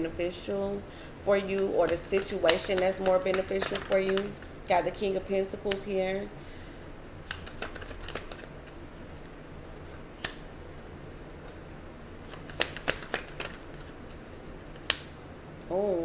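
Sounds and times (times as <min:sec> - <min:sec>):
low steady hum: 0:00.0 - 0:16.0
cards clicking on wooden table: 0:01.5 - 0:04.4, 0:12.3 - 0:13.9.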